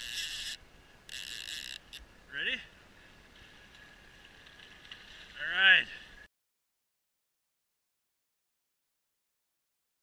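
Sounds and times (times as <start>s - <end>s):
fishing reel drag buzzing: 0.0s - 2.1s.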